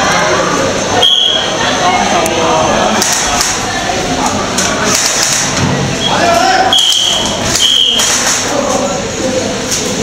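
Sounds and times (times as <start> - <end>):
murmur of voices in a large hall: 0.0 - 10.0.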